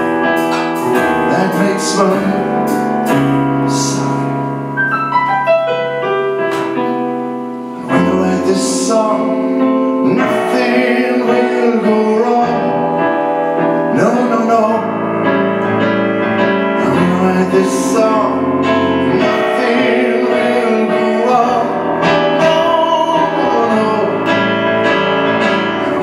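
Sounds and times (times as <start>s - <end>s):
solo piano: 0.0s - 26.0s.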